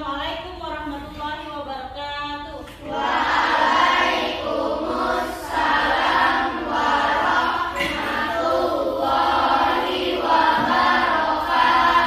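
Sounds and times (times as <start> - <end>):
children chanting in unison: 2.8 - 12.0.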